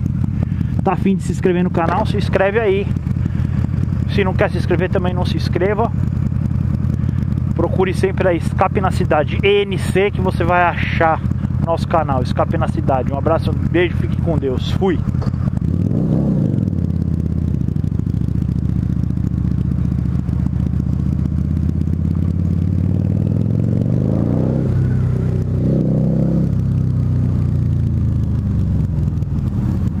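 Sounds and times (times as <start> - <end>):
motorcycle engine running: 0.0 - 30.0.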